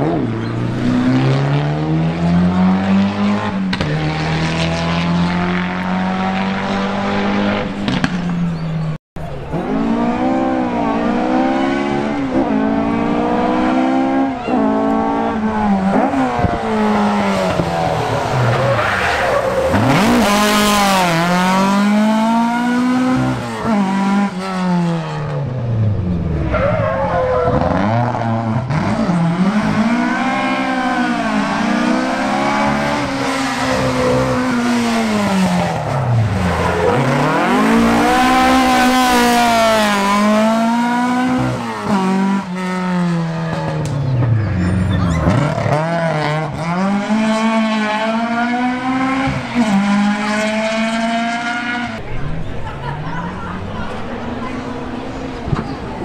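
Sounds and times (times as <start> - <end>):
rally car engine revving: 0.0 - 56.0.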